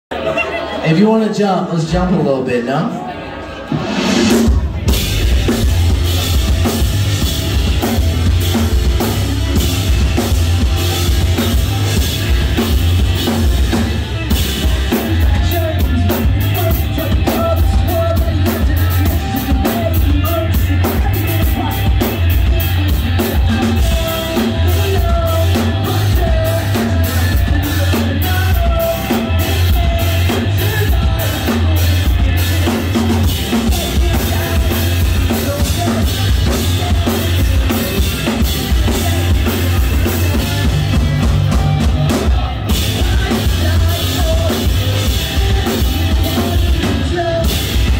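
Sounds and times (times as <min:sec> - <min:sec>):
live rock band playing: 0:00.1 - 0:47.9.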